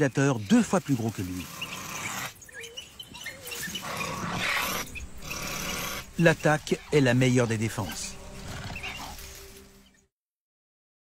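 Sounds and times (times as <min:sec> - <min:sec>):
high squeaky animal calls: 0:00.4 - 0:09.4
animal growling: 0:03.4 - 0:09.3.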